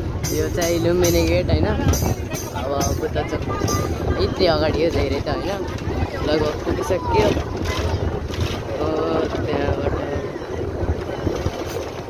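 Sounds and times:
bus engine rumble: 0.0 - 12.0
wind buffeting microphone: 0.0 - 12.0.

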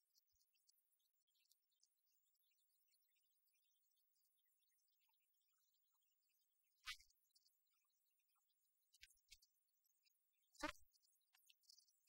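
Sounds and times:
faint high-pitched crackles: 0.0 - 12.0.

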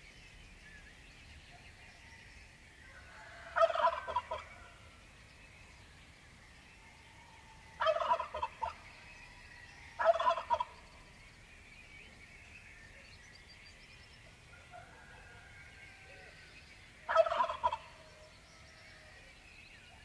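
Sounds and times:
faint birdsong: 0.0 - 20.0
turkey gobbling: 3.5 - 4.6, 7.8 - 8.8, 10.0 - 10.7, 17.1 - 18.0.

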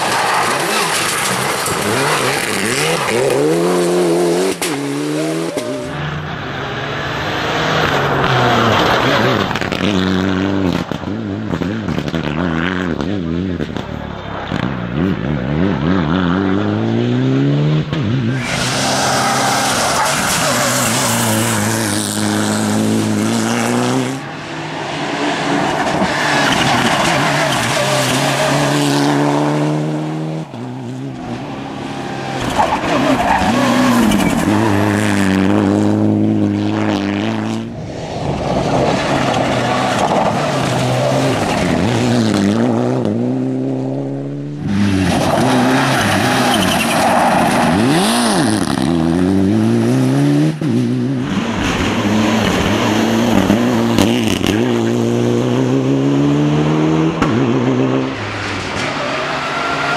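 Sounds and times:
tyres skidding on loose surface: 0.0 - 6.4, 18.3 - 29.9, 30.5 - 35.8, 37.9 - 42.6, 44.6 - 49.0
rally car engine revving: 0.0 - 59.9.

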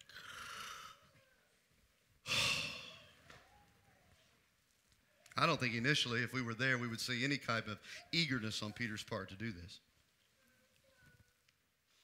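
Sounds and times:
man sighing heavily: 2.2 - 3.1.

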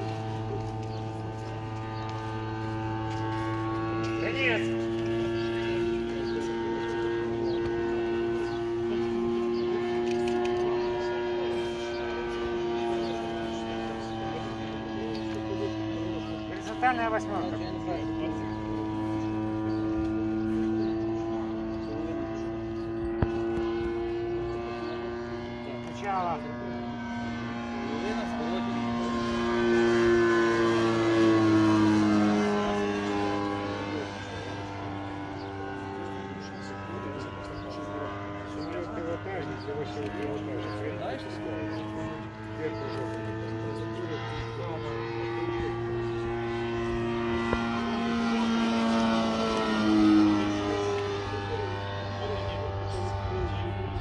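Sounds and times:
model airplane engine and propeller: 0.0 - 54.0.

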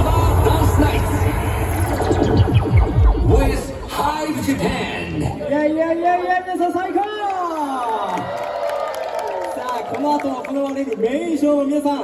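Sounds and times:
electronic dance music: 0.0 - 6.8.

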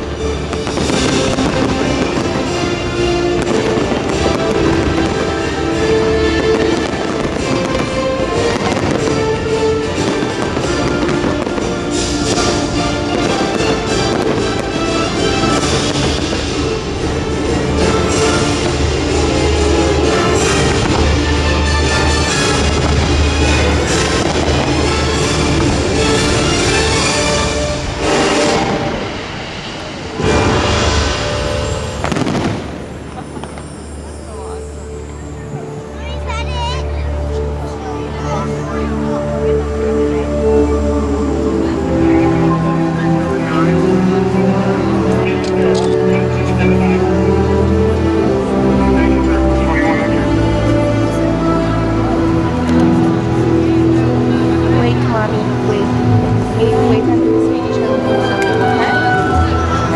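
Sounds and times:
loud show music: 0.0 - 32.8, 35.6 - 59.9
fireworks bangs: 0.0 - 34.8.

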